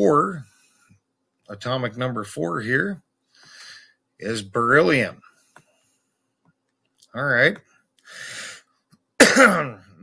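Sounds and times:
man clearing his throat: 0:09.2 - 0:10.0
man coughing: 0:09.2 - 0:10.0.

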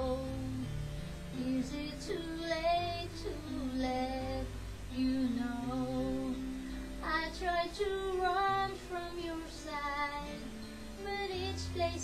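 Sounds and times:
soft instrumental backing track: 0:00.0 - 0:12.0
woman singing slow melody: 0:00.0 - 0:12.0.

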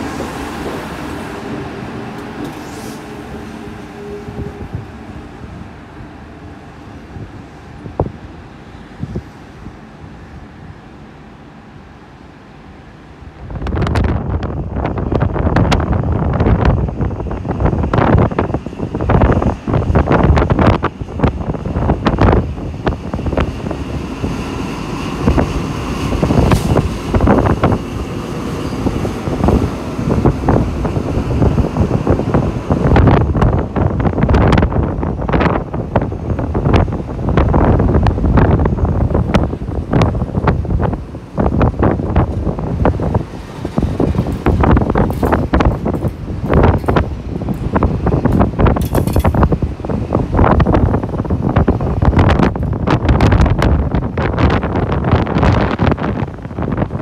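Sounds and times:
wind buffeting microphone: 0:00.0 - 0:10.8, 0:13.2 - 0:57.0
diesel train passing: 0:00.0 - 0:57.0.

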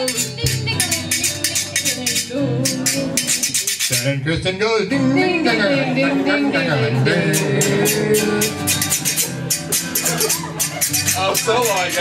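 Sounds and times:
acoustic guitar strumming: 0:00.0 - 0:12.0
people singing along: 0:01.5 - 0:03.6, 0:04.9 - 0:09.2.

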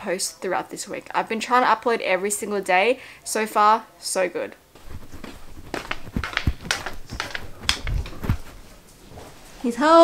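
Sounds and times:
small knocks and clicks: 0:04.8 - 0:08.5
dull thumps: 0:04.8 - 0:08.6
slipper footsteps on carpet: 0:04.8 - 0:09.4.

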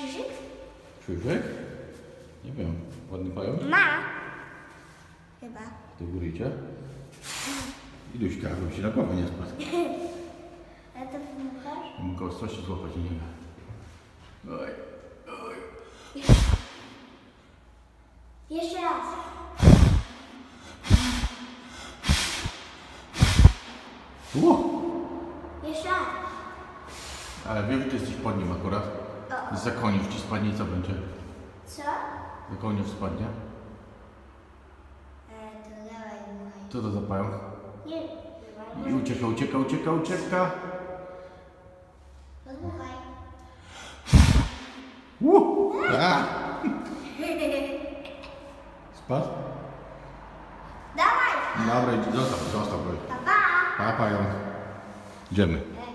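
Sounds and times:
person blowing hard puffs of breath: 0:07.2 - 0:08.0, 0:15.9 - 0:16.8, 0:19.6 - 0:24.5, 0:26.8 - 0:27.5, 0:43.6 - 0:44.8.

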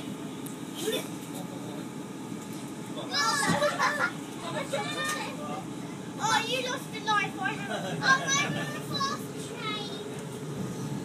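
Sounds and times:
train interior rumble: 0:00.0 - 0:11.0.

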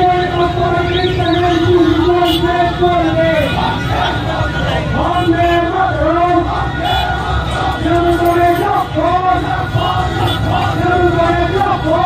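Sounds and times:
low crowd din: 0:00.0 - 0:12.0
voices singing a chant: 0:03.2 - 0:12.0.

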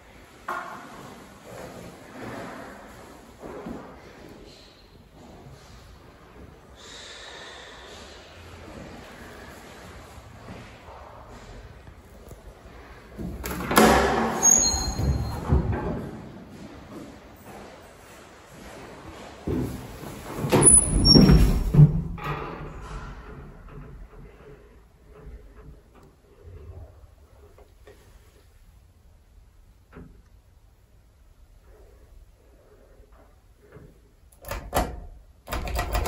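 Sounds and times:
high squeak: 0:14.4 - 0:15.4.

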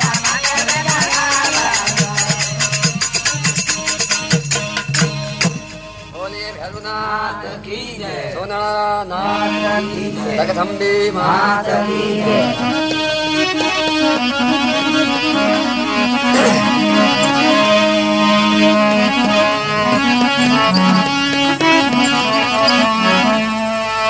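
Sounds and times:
reedy keyboard melody: 0:00.0 - 0:07.7, 0:09.1 - 0:24.0
held low drone notes: 0:12.4 - 0:23.8.

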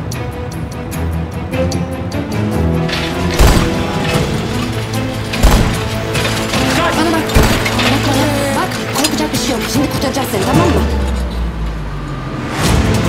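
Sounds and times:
dramatic orchestral score: 0:00.0 - 0:13.0
deep booming hits: 0:03.1 - 0:06.4
voices: 0:03.6 - 0:11.4.

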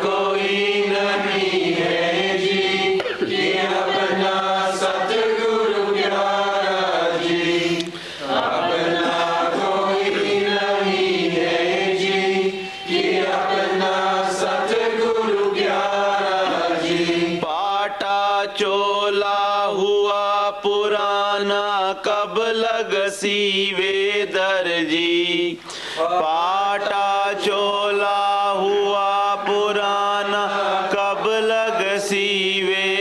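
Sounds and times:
person chanting a hymn: 0:00.0 - 0:33.0.

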